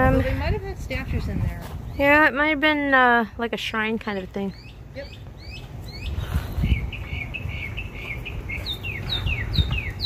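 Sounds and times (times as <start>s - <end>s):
songbird chattering notes: 4.2s - 10.0s.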